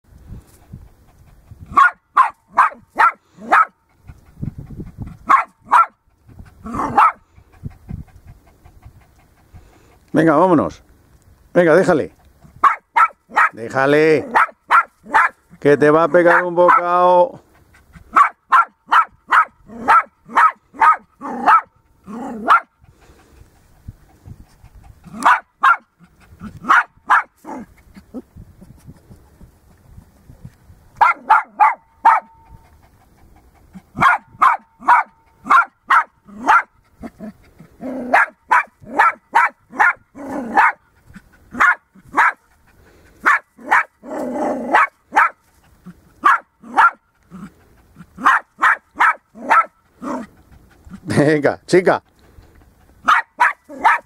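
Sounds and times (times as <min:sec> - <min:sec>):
small dog yapping: 0:01.7 - 0:03.8, 0:05.2 - 0:06.0, 0:06.6 - 0:07.2, 0:12.6 - 0:13.6, 0:14.2 - 0:15.5, 0:16.3 - 0:16.9, 0:18.1 - 0:22.7, 0:25.1 - 0:28.2, 0:31.0 - 0:32.6, 0:33.8 - 0:42.5, 0:43.2 - 0:50.3, 0:53.0 - 0:54.0.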